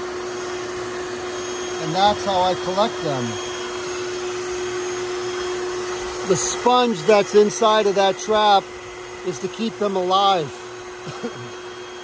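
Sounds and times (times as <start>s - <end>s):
vacuum motor humming: 0.0s - 12.0s.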